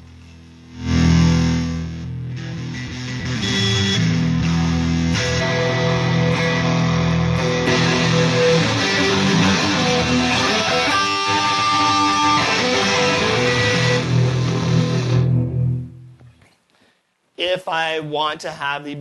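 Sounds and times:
electric guitar strumming: 0.7s - 16.3s.

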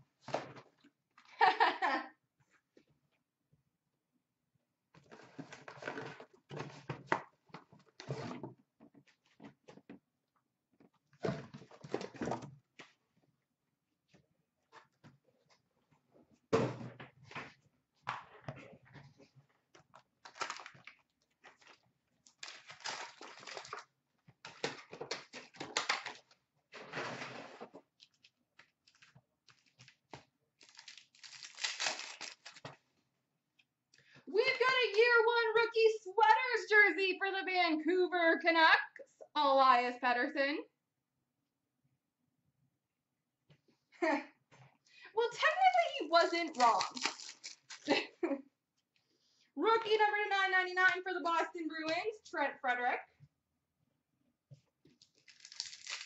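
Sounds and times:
wrappers rustling and tearing: 20.2s - 23.9s, 28.0s - 30.0s, 30.6s - 32.8s, 46.3s - 47.9s, 55.0s - 56.0s.

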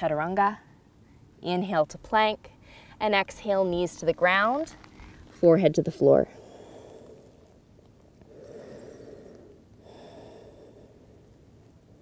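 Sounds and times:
woman breathing: 2.6s - 3.0s, 6.3s - 7.6s, 8.2s - 11.4s.

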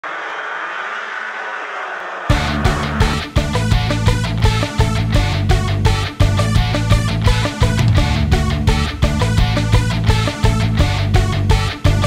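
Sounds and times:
racing engine roar: 0.0s - 4.3s.

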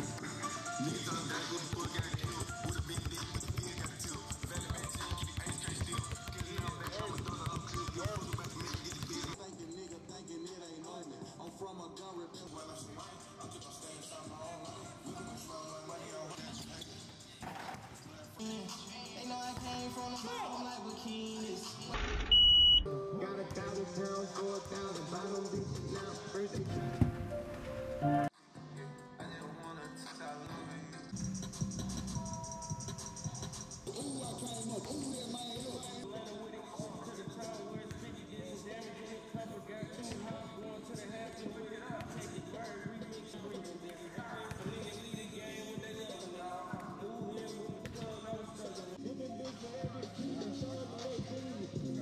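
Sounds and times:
background music: 0.0s - 52.0s
basketball bouncing on hardwood: 1.7s - 9.4s
high-pitched electronic beep: 22.0s - 22.9s.

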